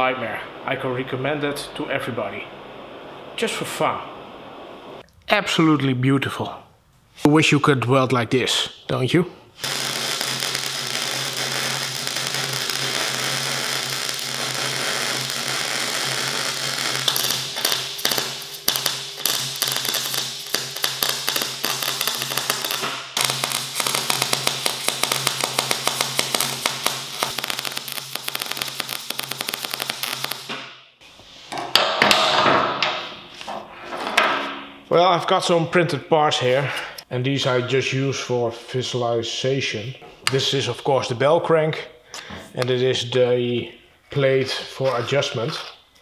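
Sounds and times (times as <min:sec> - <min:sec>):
welder arc crackling and sizzling: 0:09.6 - 0:31.2.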